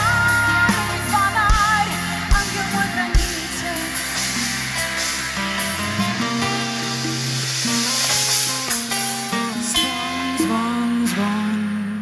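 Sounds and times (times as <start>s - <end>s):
live band music: 0.0s - 11.8s
guitar: 0.0s - 12.0s.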